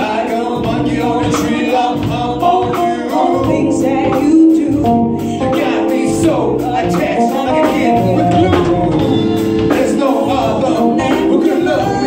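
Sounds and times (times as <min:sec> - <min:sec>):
live band playing: 0:00.0 - 0:12.0
person singing: 0:00.0 - 0:12.0.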